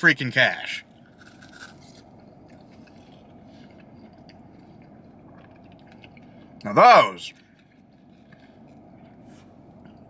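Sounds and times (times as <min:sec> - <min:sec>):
car cabin hum: 0:00.0 - 0:10.0
chewing: 0:00.9 - 0:10.0.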